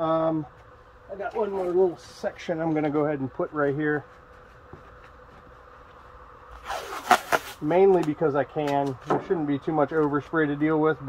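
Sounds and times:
tape ripping off roll: 0:06.6 - 0:08.1.

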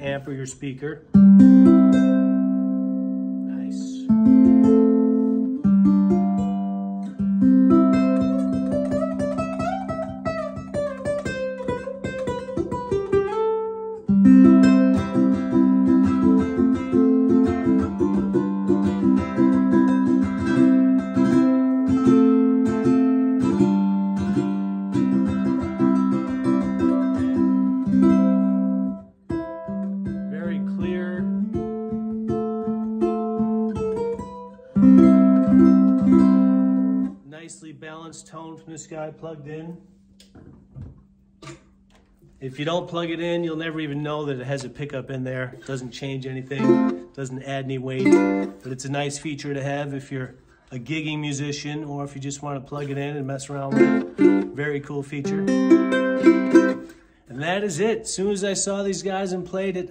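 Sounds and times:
electric ukulele strummed chords: 0:01.1 - 0:37.2, 0:46.4 - 0:48.7, 0:53.5 - 0:58.0.

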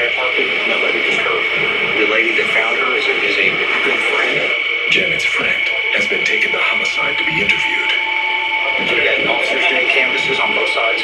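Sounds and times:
indistinct television speech: 0:00.0 - 0:11.0
steady high-pitched tone: 0:00.0 - 0:11.0.

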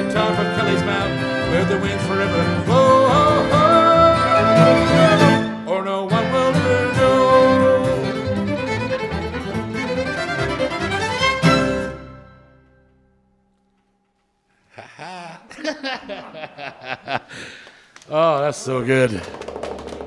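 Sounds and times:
string ensemble playing folk melody: 0:00.0 - 0:12.5
acoustic guitar: 0:00.0 - 0:13.9.

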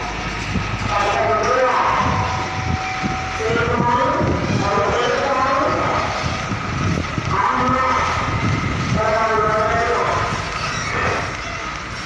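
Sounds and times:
heavy diesel truck engine: 0:00.0 - 0:12.0
people talking: 0:00.9 - 0:02.7, 0:03.3 - 0:11.4.

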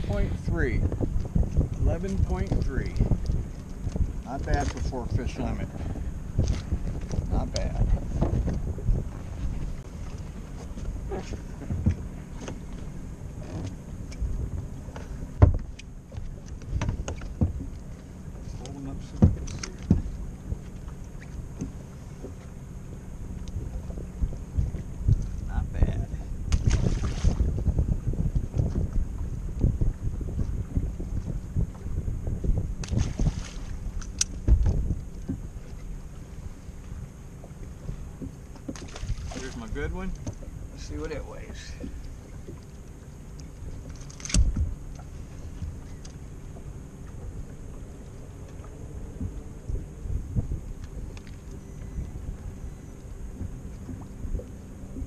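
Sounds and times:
water lapping against hull: 0:00.0 - 0:55.0
wind on microphone: 0:00.0 - 0:55.0
knocks and clunks on deck: 0:05.8 - 0:09.0, 0:10.3 - 0:13.8, 0:14.5 - 0:17.8, 0:19.0 - 0:20.7, 0:34.2 - 0:35.8.

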